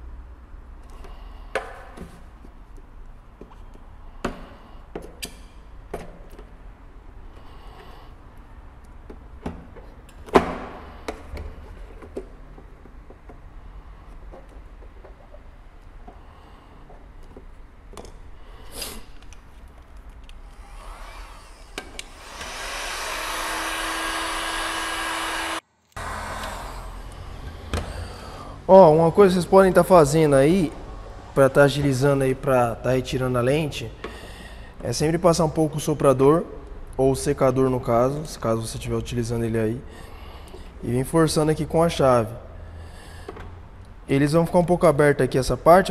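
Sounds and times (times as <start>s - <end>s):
heat gun blowing: 20.4s - 27.4s.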